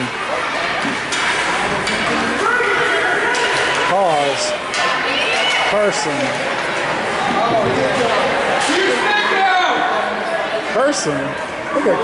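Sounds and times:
spectators: 0.0 - 12.0.

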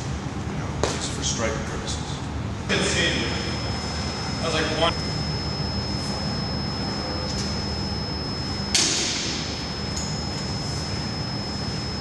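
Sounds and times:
faint high whine: 2.7 - 12.0
low hum: 2.7 - 12.0.

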